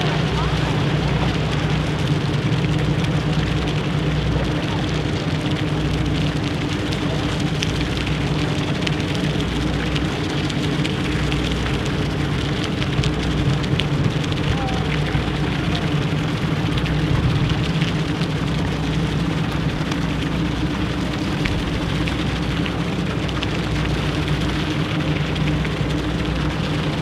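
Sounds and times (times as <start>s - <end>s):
ship machinery hum: 0.0s - 27.0s
water and wind wash: 0.0s - 27.0s.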